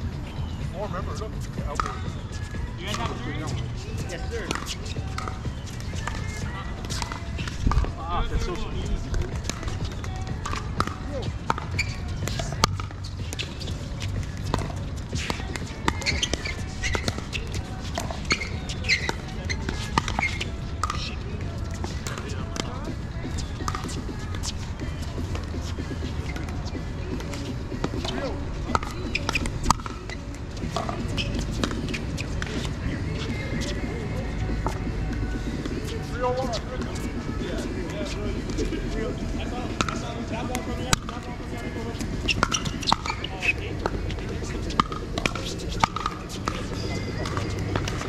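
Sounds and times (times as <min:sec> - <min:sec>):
paddles hitting plastic ball: 0:04.4 - 0:07.9, 0:09.1 - 0:24.6, 0:27.2 - 0:32.7, 0:42.0 - 0:48.0.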